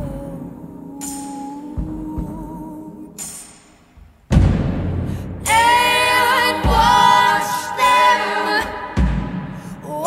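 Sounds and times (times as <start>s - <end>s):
women singing in harmony: 0.0s - 3.5s, 5.3s - 10.0s
deep drum hit: 4.3s - 6.0s, 8.8s - 9.8s.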